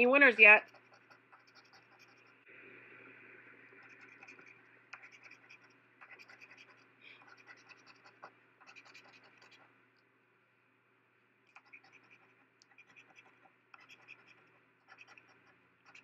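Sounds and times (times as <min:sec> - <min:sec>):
coin scratching lottery ticket: 0:03.9 - 0:09.6, 0:11.6 - 0:16.0.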